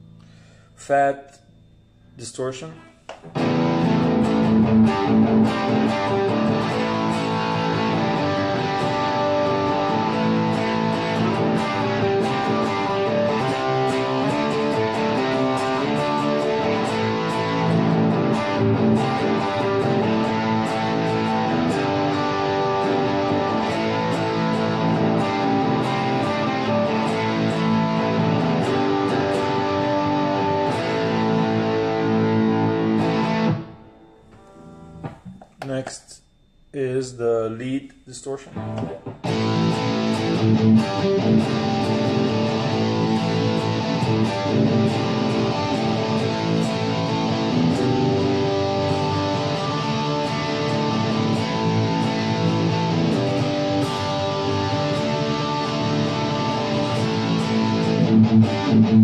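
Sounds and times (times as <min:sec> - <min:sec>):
distorted electric guitar: 0:01.2 - 0:59.0.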